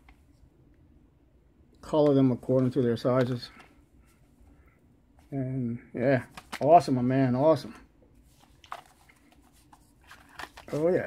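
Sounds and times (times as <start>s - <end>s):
plastic packaging clicks and rustles: 8.4s - 11.0s.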